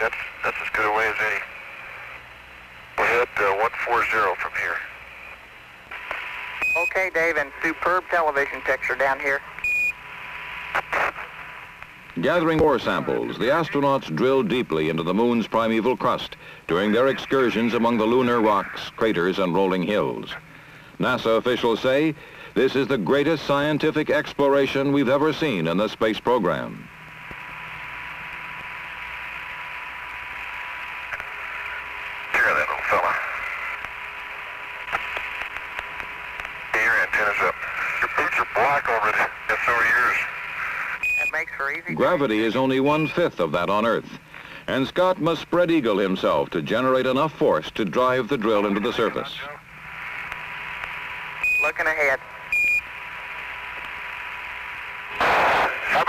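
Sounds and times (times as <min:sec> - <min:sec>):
distorted radio voice chatter: 0:00.0 - 0:02.2, 0:02.9 - 0:05.1, 0:05.9 - 0:09.6, 0:10.7 - 0:11.6, 0:12.2 - 0:14.4, 0:15.9 - 0:19.7, 0:31.1 - 0:33.8, 0:36.4 - 0:44.8, 0:48.2 - 0:50.3, 0:51.5 - 0:52.4, 0:55.2 - 0:56.0
radio static hiss: 0:00.0 - 0:56.0.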